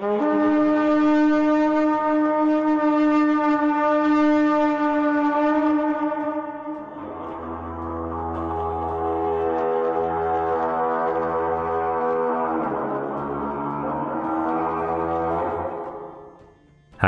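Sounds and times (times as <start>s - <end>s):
deep horn blowing long note: 0.0s - 16.3s.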